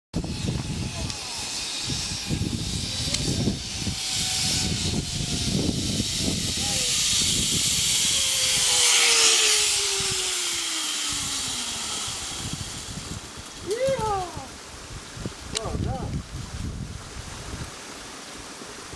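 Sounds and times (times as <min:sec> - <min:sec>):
trolley whine sliding down: 0:00.2 - 0:14.2
zipline trolley whirring: 0:00.2 - 0:14.8.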